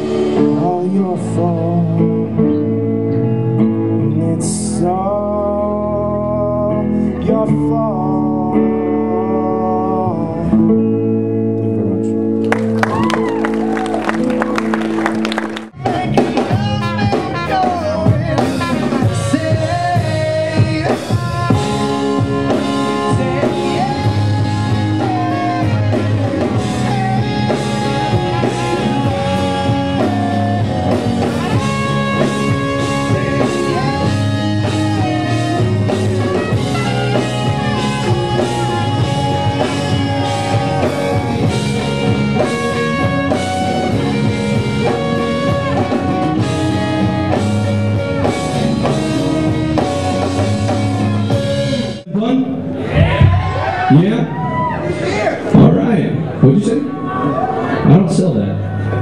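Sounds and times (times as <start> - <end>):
man singing: 0.0 - 12.2, 15.8 - 52.3
electric guitar chords: 0.0 - 54.8
band song: 0.0 - 59.0
keyboard: 0.0 - 59.0.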